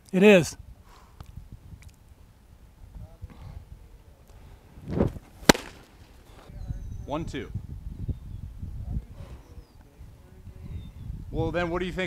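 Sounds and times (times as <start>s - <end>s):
baseball smacking into mitt: 5.0s - 6.0s.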